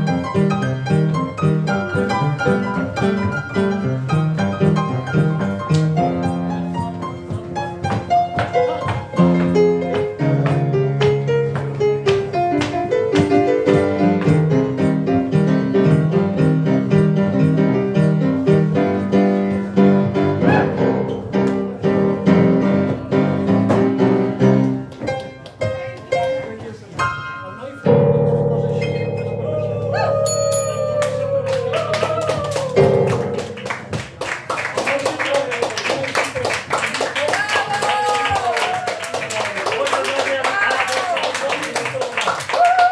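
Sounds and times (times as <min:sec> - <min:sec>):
upright piano playing swing jazz: 0:00.0 - 0:42.9.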